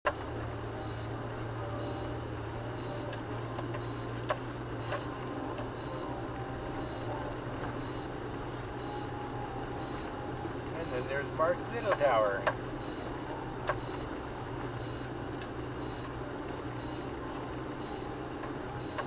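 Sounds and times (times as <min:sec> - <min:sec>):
vehicle engine running: 0:00.1 - 0:19.0.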